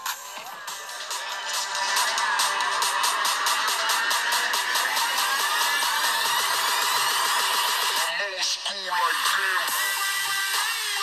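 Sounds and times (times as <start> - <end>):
electronic trap music: 0.0 - 11.0.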